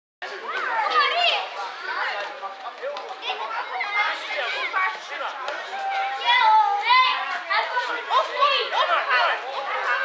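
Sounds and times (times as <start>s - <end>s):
children shouting: 0.3s - 2.3s, 3.3s - 10.0s.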